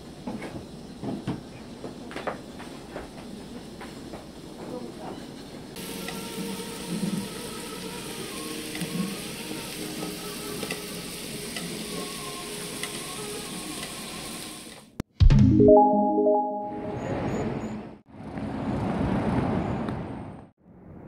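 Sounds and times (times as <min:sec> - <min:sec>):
meat sizzling on a grill pan: 0:05.8 - 0:14.8.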